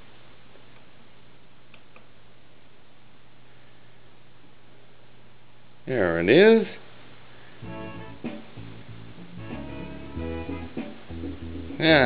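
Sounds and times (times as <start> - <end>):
guitar music through speakers: 7.6 - 12.0.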